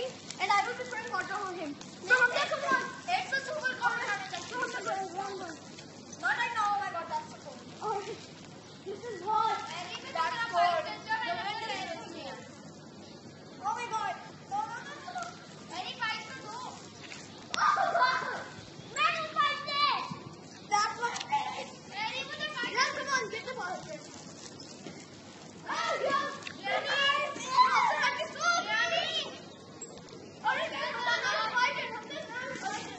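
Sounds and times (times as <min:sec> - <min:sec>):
children shouting and squealing: 0:00.0 - 0:12.6, 0:13.5 - 0:16.9, 0:17.5 - 0:24.5, 0:25.5 - 0:29.7, 0:30.3 - 0:32.9.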